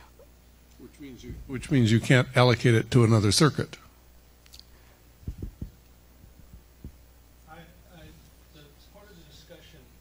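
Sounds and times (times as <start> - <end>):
steady low hum: 0.0 - 10.0
microphone handling thumps: 5.2 - 7.1.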